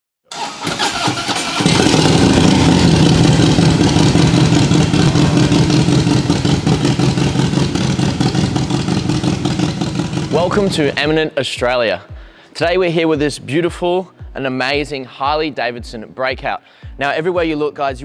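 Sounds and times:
motorcycle engine starting and running: 0.3s - 11.0s.

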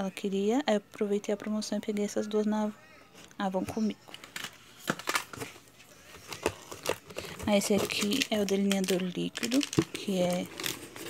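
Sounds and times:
items knocking and rustling in a box: 4.2s - 11.0s.

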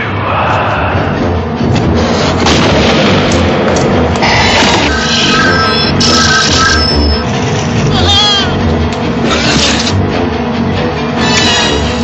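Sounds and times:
sharp booming hits: 1.8s - 3.6s.

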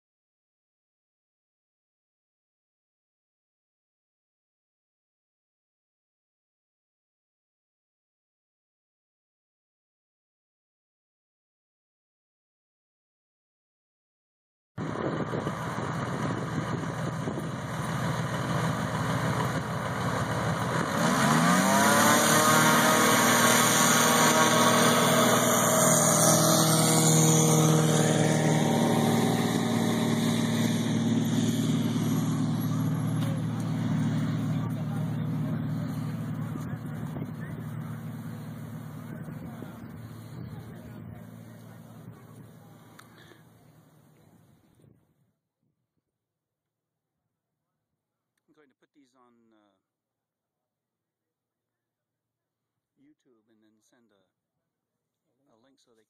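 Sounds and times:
propeller plane engine: 14.8s - 45.0s.

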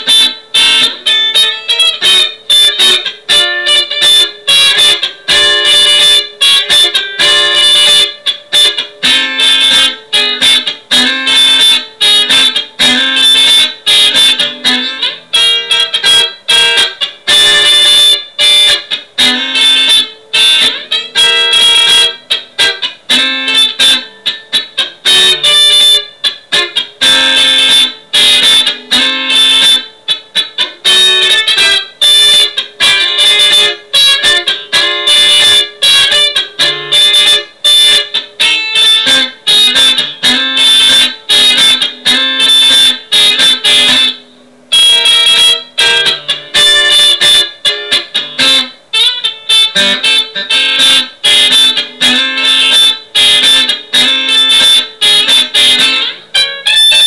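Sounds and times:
electric guitar funk chords: 0.0s - 57.0s.

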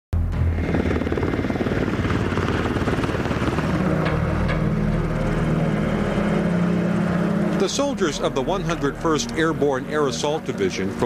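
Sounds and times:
steady low hum: 0.2s - 10.1s
helicopter rotors chopping: 0.4s - 11.0s.

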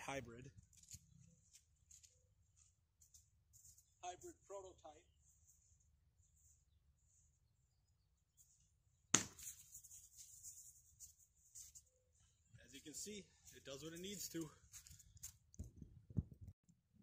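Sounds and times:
faint rustling and shuffling: 0.6s - 7.3s
sharp dart launch: 9.1s - 9.6s.

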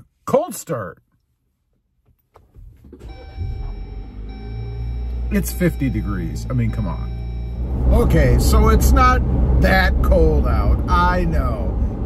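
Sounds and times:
car engine starting and idling: 2.2s - 12.0s
steady high tone: 3.1s - 9.2s.

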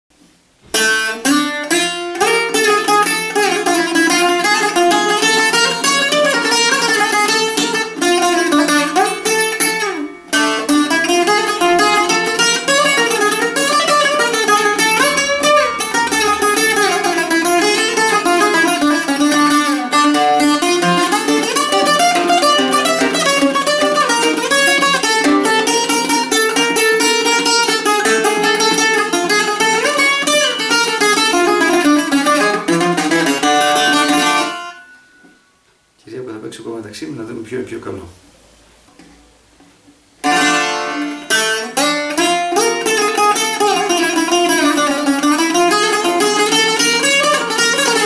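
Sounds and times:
bouzouki plucked melody: 0.7s - 35.4s, 40.2s - 48.0s.

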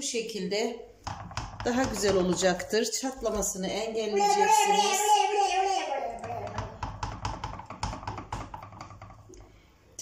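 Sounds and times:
hand patting dough: 1.0s - 2.7s, 6.2s - 9.3s.

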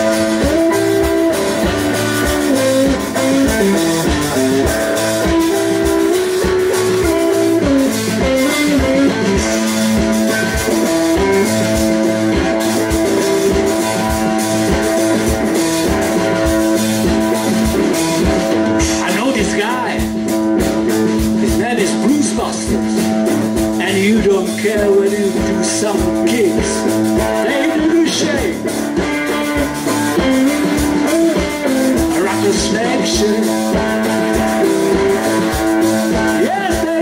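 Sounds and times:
bass guitar: 0.0s - 37.0s
drum kit steady beat: 0.0s - 37.0s
electric guitar: 0.0s - 37.0s.

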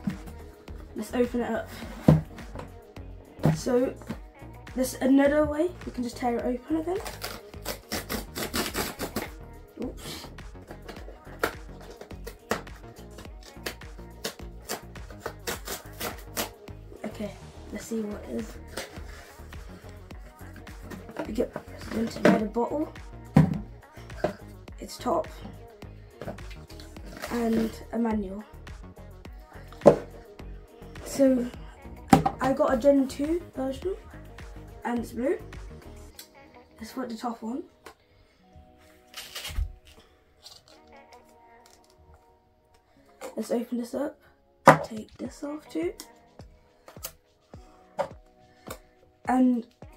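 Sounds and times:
background music: 0.0s - 49.9s
cardboard box being torn: 7.0s - 9.3s, 39.1s - 39.7s.

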